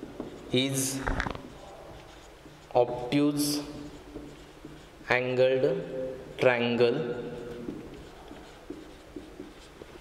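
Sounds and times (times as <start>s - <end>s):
marker pen writing on whiteboard: 0.0s - 10.0s.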